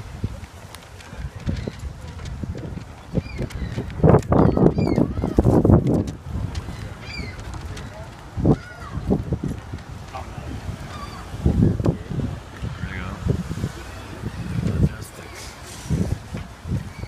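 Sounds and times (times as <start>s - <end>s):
gulls calling: 1.2s - 5.7s, 6.4s - 17.0s.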